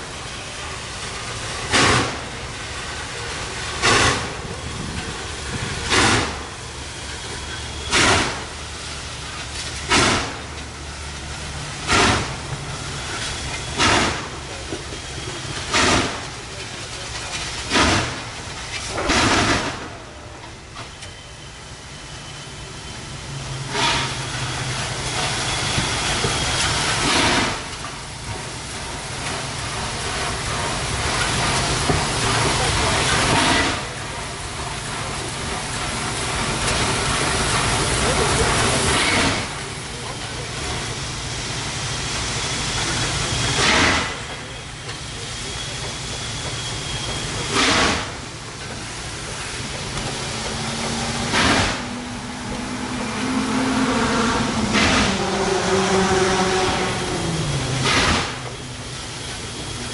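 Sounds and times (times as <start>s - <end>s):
steady hiss of steam: 0.0s - 59.9s
steam locomotive exhaust chuffs: 0.0s - 59.9s.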